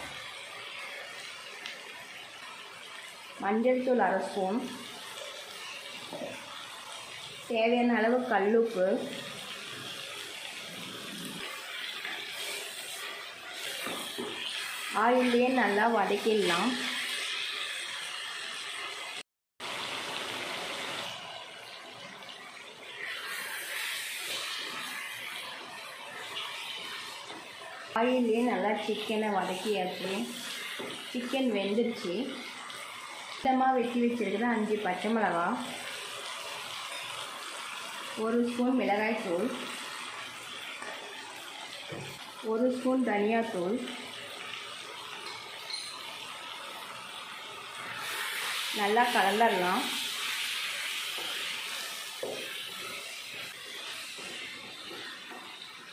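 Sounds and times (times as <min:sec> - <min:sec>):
chicken sizzling in hot oil: 0:00.0 - 0:55.9
food frying in a pan: 0:00.0 - 0:55.9.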